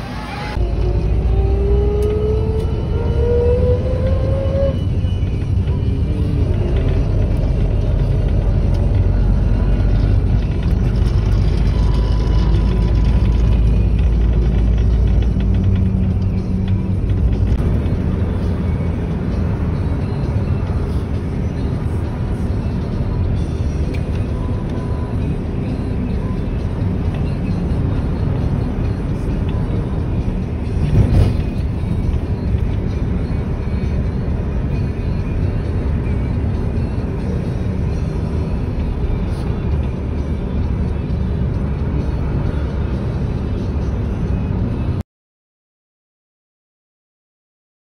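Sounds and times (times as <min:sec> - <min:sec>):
music playing: 0:00.0 - 0:45.0
road and engine rumble: 0:00.0 - 0:45.0.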